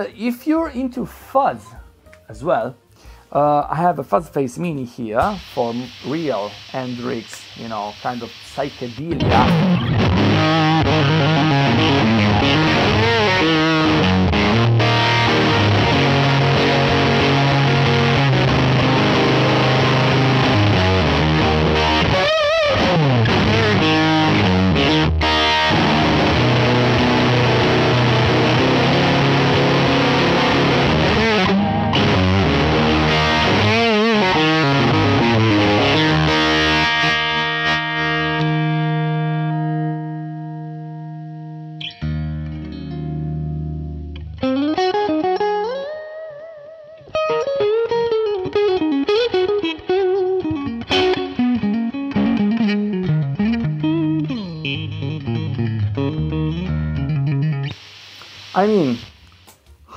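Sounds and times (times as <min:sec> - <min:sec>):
guitar lead phrases with string bends: 0:00.0 - 0:57.8
fuzzed electric guitar chords: 0:05.2 - 0:59.2.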